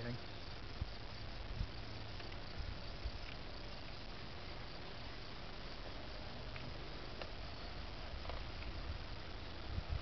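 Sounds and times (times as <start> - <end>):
crickets chirring: 0.0 - 10.0
faint ticks: 0.8 - 8.9.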